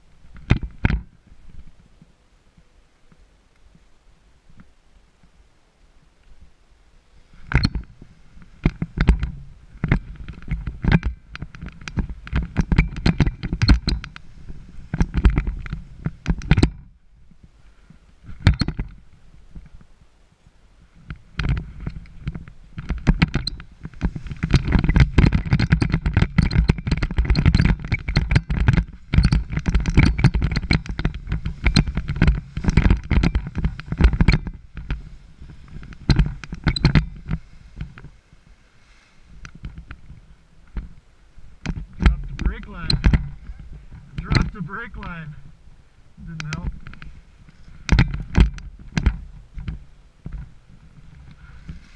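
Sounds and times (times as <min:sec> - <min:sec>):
wind buffeting microphone: 0:07.4 - 0:51.9.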